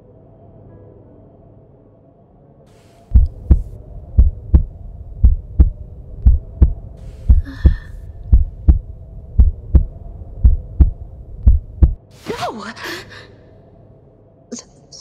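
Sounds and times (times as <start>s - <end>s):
faint steady drone: 0.0s - 12.1s
heartbeat double thumps: 3.1s - 12.0s
short breath: 7.0s - 8.2s.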